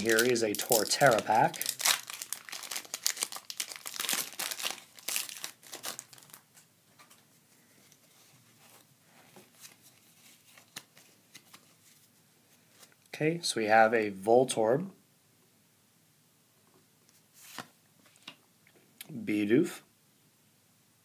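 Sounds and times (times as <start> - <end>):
foil wrapper crinkling and tearing: 0.0 - 6.5.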